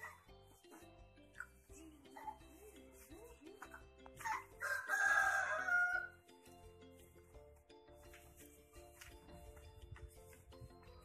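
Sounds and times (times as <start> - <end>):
quiet background music: 0.0 - 11.0
rooster crowing: 4.6 - 6.1.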